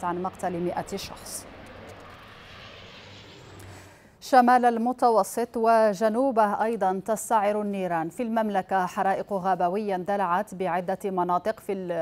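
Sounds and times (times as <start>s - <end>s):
aircraft engines flying low: 0.0s - 4.2s.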